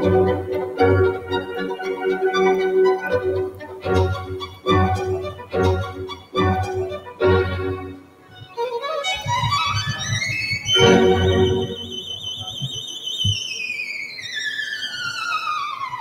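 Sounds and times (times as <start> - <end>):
lower accompaniment: 0.0 - 13.4
violin melody with vibrato: 0.0 - 13.4.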